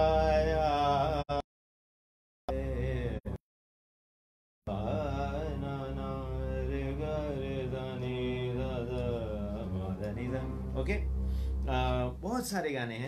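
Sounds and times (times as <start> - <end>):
man singing: 0.0 - 1.5, 2.5 - 3.4, 4.7 - 10.8
electronic keyboard drone: 4.7 - 13.0.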